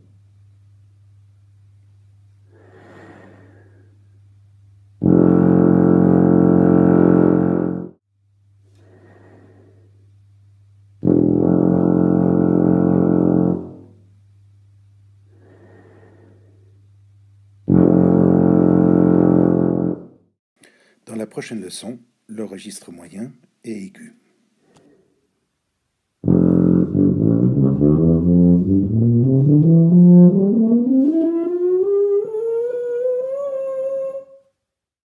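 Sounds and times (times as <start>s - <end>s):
tuba playing low notes: 5.0s - 8.0s, 11.0s - 14.0s, 17.6s - 20.2s, 26.2s - 34.4s.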